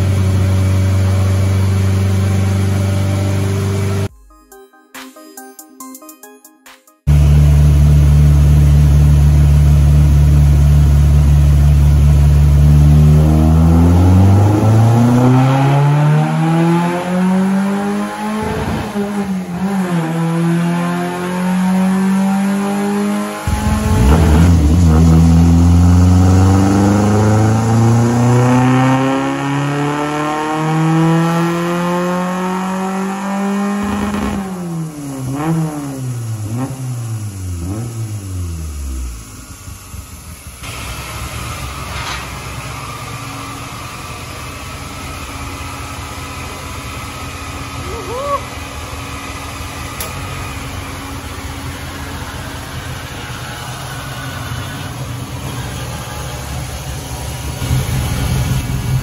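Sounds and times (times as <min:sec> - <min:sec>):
car engine revving on dynamometer: 0:07.1 - 0:41.8, 0:48.8 - 0:59.0.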